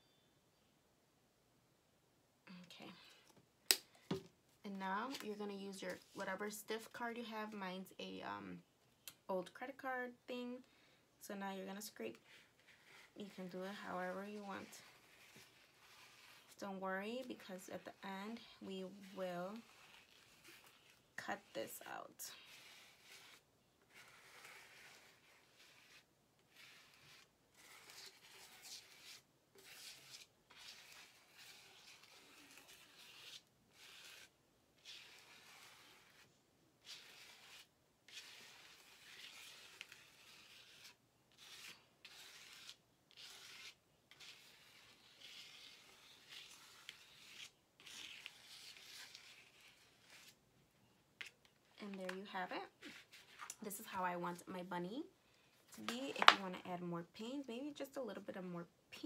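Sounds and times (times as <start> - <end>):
plastic card scraping wet paint: 5.0 - 6.9, 12.1 - 50.4, 55.7 - 56.6.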